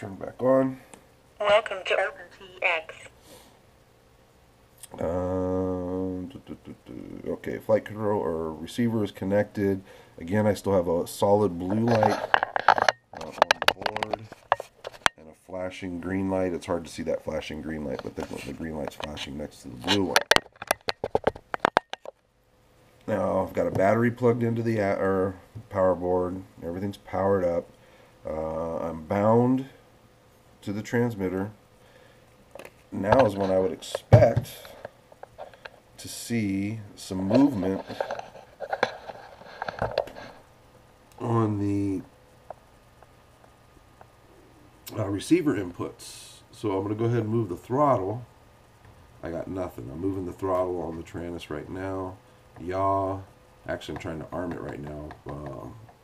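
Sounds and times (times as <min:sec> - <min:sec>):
man murmuring: 0:04.9 - 0:07.4
sharp clicks and knocks: 0:12.0 - 0:15.2, 0:19.8 - 0:22.2.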